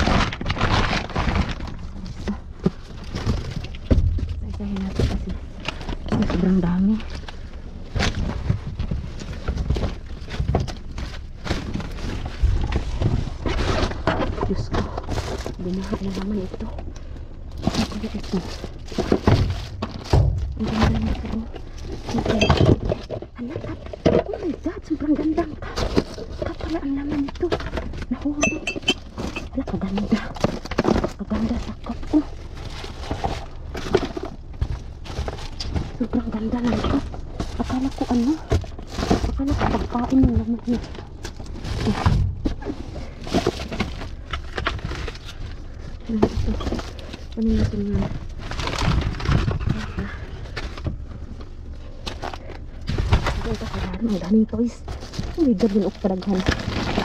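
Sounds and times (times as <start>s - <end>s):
cardboard and plastic rustling: 0.0s - 57.0s
person talking: 4.4s - 5.5s, 6.1s - 7.1s, 15.6s - 16.8s, 20.6s - 25.7s, 26.4s - 28.8s, 29.4s - 32.3s, 36.0s - 38.5s, 39.3s - 40.9s, 53.4s - 57.0s.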